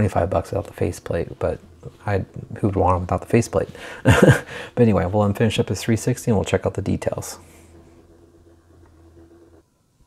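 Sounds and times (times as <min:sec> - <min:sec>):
motorized turntable humming: 0:00.0 - 0:10.0.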